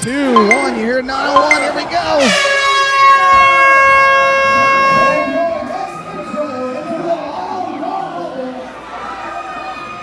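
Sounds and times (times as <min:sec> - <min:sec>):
crowd noise: 0:00.0 - 0:10.0
buzzy countdown horn: 0:00.3 - 0:05.4.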